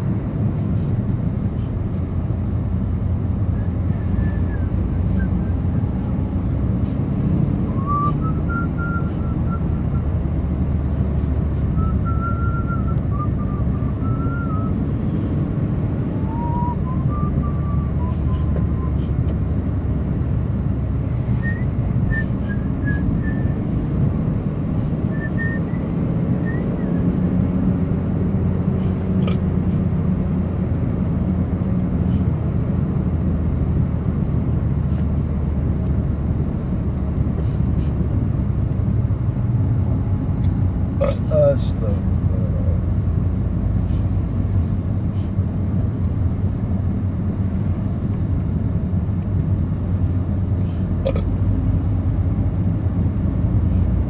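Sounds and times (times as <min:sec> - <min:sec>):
car road and engine rumble: 0:00.0 - 0:54.0.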